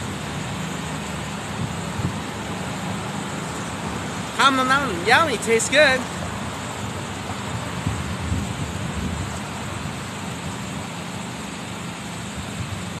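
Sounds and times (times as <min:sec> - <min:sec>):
road traffic rush: 0:00.0 - 0:13.0.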